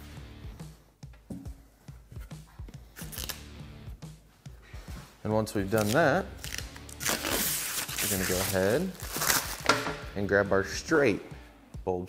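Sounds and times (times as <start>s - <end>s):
background music with a beat: 0.0s - 5.4s, 8.9s - 11.9s
protective film peeling: 3.0s - 3.4s, 5.7s - 10.0s
crackling rip: 5.7s - 9.7s.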